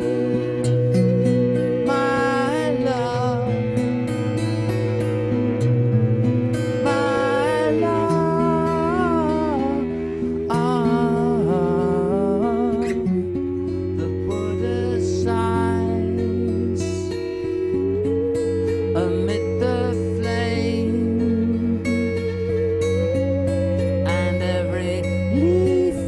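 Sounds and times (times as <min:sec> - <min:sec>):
musical saw: 0:00.0 - 0:14.6
acoustic guitar chords: 0:00.0 - 0:26.0
cello: 0:00.0 - 0:26.0.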